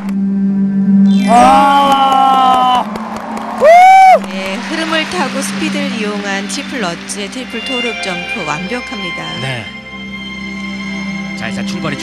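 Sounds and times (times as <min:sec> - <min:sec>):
loud whoop: 0:01.1 - 0:04.6
spectators cheering: 0:01.2 - 0:08.8
people clapping: 0:01.3 - 0:09.4.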